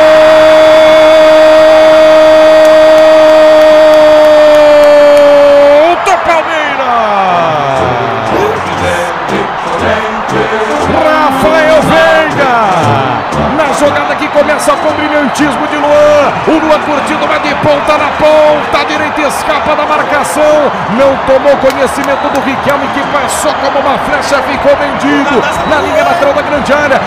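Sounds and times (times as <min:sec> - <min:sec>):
commentator shouting goal: 0:03.0 - 0:27.0
music with singing and beat: 0:07.1 - 0:19.4.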